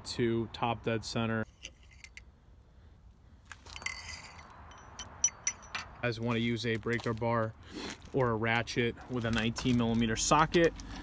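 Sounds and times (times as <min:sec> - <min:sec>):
metal tools clinking: 0:01.4 - 0:02.3, 0:03.5 - 0:06.1
handling noise: 0:03.4 - 0:11.0.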